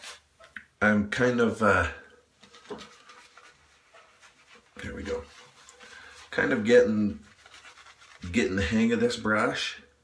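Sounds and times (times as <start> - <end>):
shaving brush swishing lather: 2.8 - 9.2.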